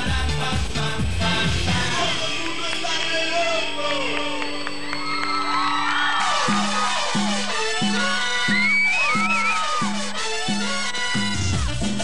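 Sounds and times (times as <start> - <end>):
audience cheering and whooping: 2.4 - 10.4.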